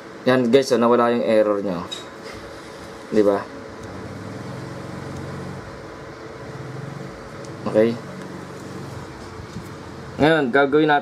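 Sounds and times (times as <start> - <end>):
low engine-like hum: 3.7 - 10.3.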